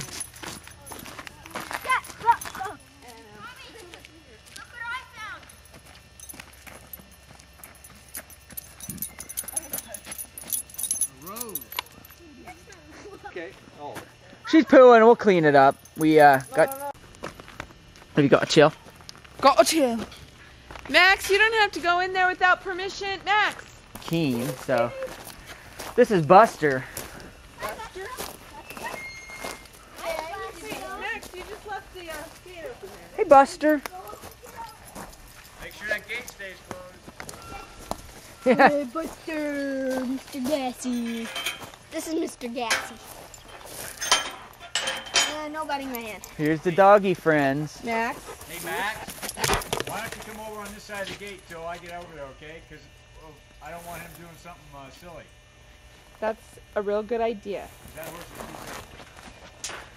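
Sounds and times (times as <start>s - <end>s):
footsteps on dry grass and dirt: 0.0s - 14.5s, 16.6s - 21.0s, 22.6s - 44.6s, 57.6s - 59.9s.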